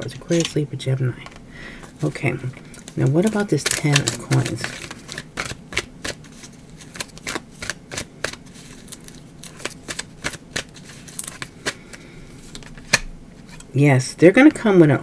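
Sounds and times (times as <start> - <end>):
cards shuffled by hand: 2.8 - 13.6.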